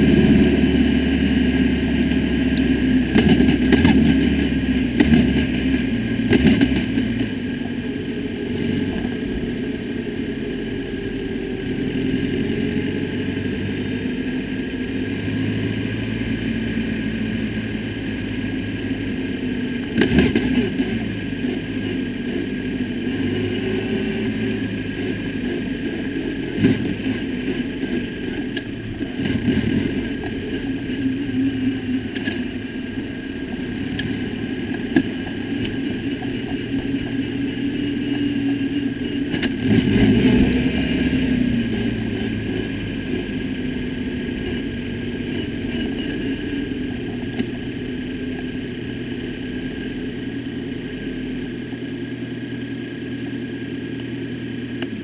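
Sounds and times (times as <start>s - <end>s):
race car engine at low revs: 0.0s - 55.0s.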